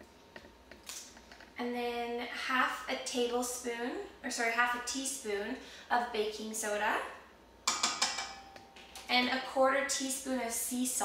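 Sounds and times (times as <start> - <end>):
bowl ringing: 7.7 - 8.8
metal spoon tapping metal bowl: 7.7 - 8.8.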